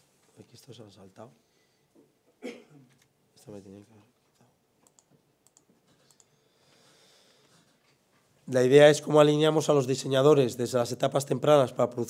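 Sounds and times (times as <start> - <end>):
faint keyboard or mouse clicks: 4.8 - 6.4.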